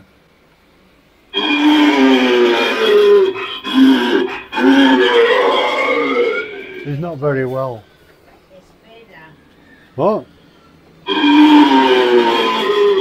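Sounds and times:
eerie wailing sound effect: 1.3 - 8.0, 11.0 - 13.0.

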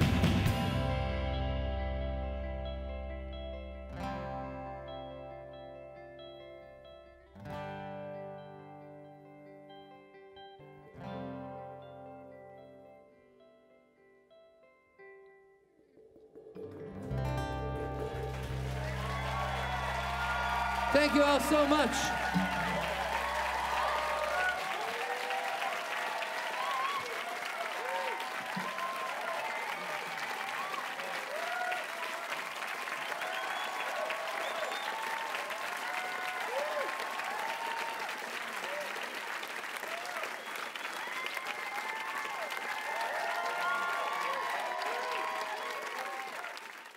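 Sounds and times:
audience applauding: 17.4 - 46.9
crowd cheering and whooping: 17.5 - 46.9.

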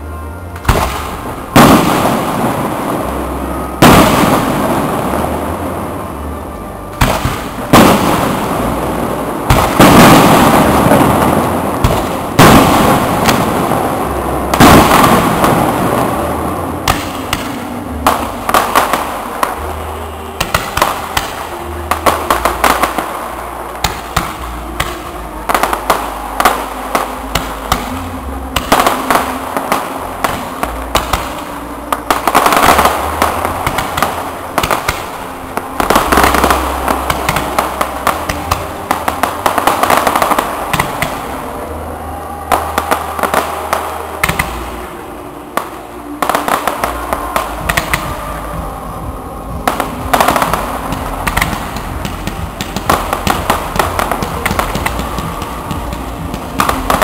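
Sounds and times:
fireworks bangs and crackling: 0.0 - 57.0.

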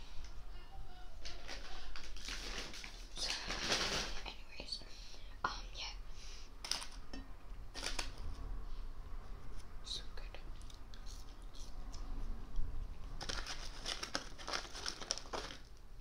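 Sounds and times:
rustles: 1.2 - 4.4
chewing and mouth noises: 10.5 - 15.5.

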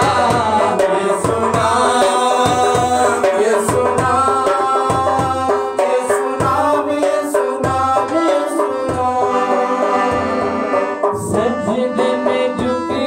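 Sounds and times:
harmonium chords: 0.0 - 13.0
person singing: 0.0 - 13.0.

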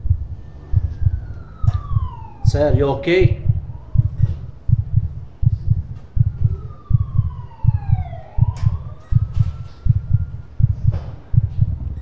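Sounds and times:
heartbeat thumps: 0.0 - 12.0
siren-like gliding tone: 0.0 - 12.0.

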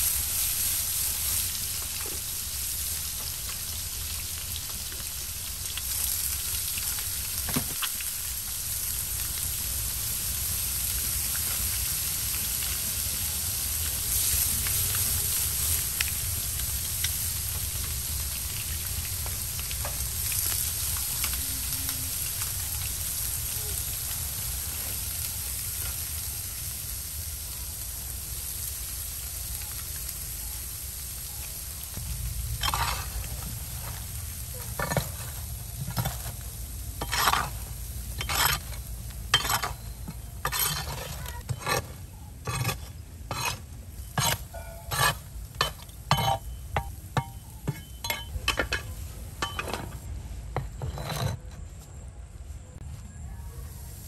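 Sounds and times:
food sizzling: 0.0 - 51.1
small crackles and clicks: 3.2 - 8.2, 13.8 - 24.3.

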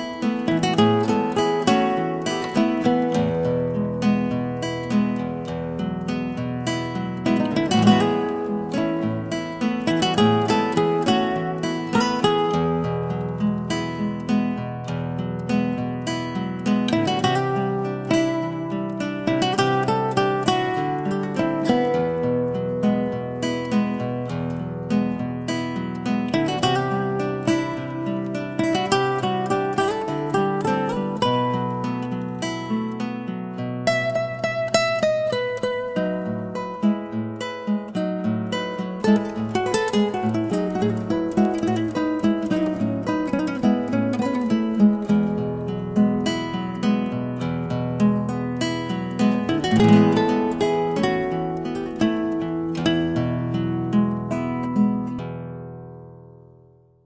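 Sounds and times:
acoustic guitar music: 0.0 - 57.0.

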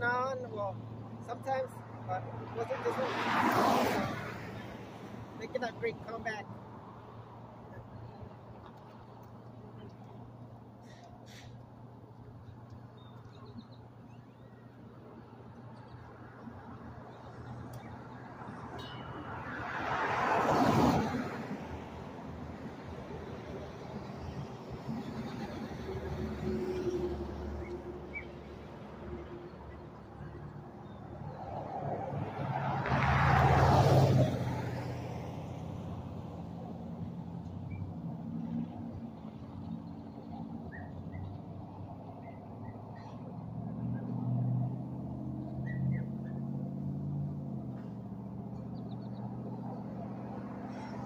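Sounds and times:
vehicles passing: 0.0 - 51.0.

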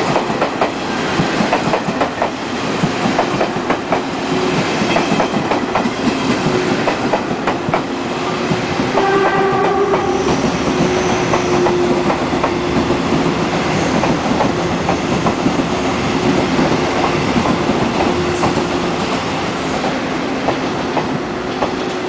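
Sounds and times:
train wheels clicking over rail joints: 0.0 - 7.9.

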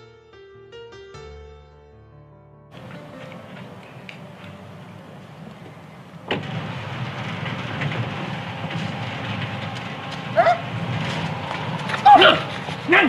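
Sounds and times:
engine rumble: 2.8 - 13.0
high-pitched yelp: 10.3 - 10.7, 11.9 - 13.0.

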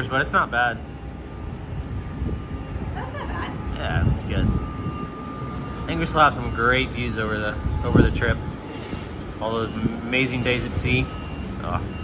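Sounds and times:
steady hum from ship: 0.0 - 12.0
wind buffeting microphone: 0.0 - 12.0.

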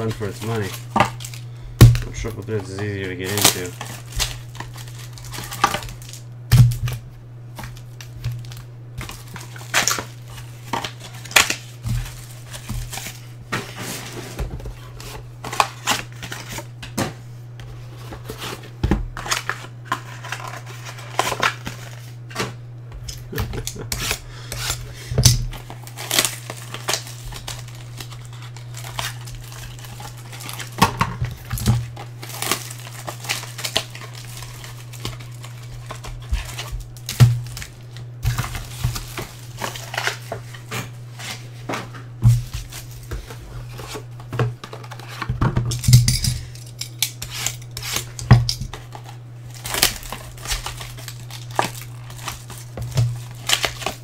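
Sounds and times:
plastic card cases clattering: 0.0 - 6.1
plastic wrap crinkling and tearing: 0.0 - 7.0, 7.6 - 16.8, 23.1 - 41.6, 42.2 - 45.9, 46.5 - 54.0.

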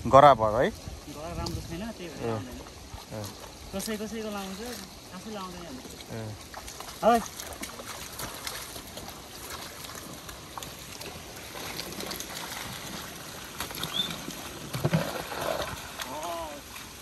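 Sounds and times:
water trickling and splashing: 0.0 - 17.0.

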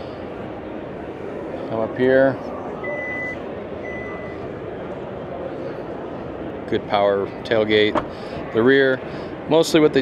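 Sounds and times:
high warning beeps: 2.8 - 4.4.

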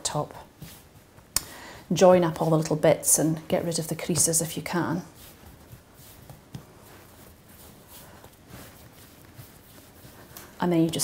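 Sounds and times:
hands patting dough: 0.1 - 1.6, 3.5 - 11.0.

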